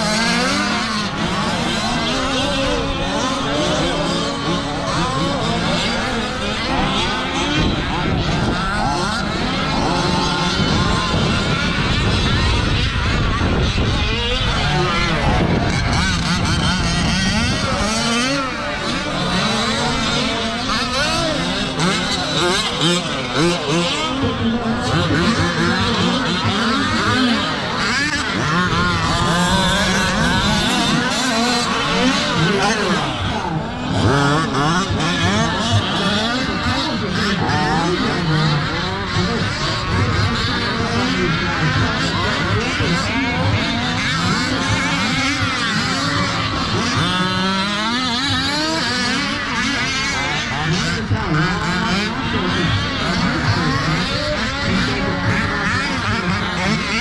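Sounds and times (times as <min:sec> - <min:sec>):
small two-stroke engines revving: 0:00.0 - 0:57.0.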